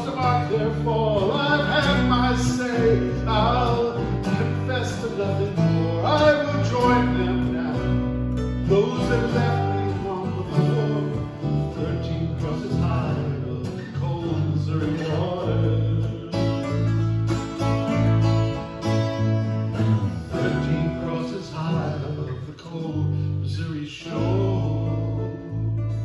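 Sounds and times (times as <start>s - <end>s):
acoustic guitars strumming: 0.0s - 26.0s
electric bass notes: 0.0s - 26.0s.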